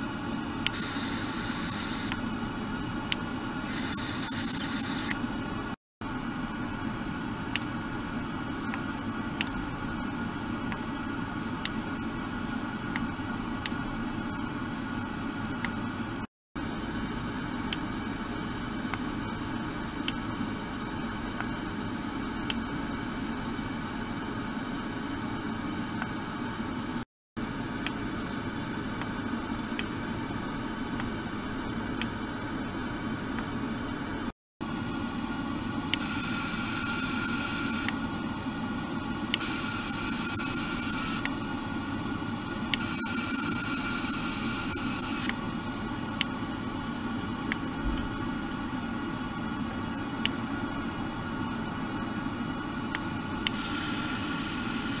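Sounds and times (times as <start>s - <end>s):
sonic device buzzing in water: 0.7s - 2.2s, 3.6s - 5.2s, 35.9s - 37.9s, 39.4s - 41.3s, 42.7s - 45.4s, 53.5s - 55.0s.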